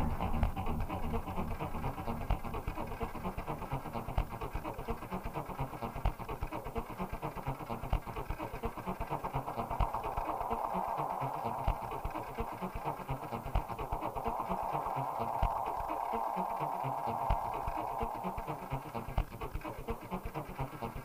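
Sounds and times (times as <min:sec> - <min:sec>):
noisy mid-range texture: 0:00.0 - 0:21.0
glitchy electronic music: 0:07.8 - 0:20.2.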